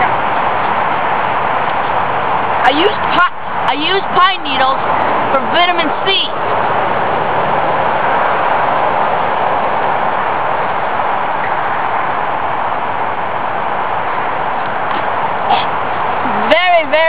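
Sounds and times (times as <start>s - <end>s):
steady rushing noise: 0.0s - 17.0s.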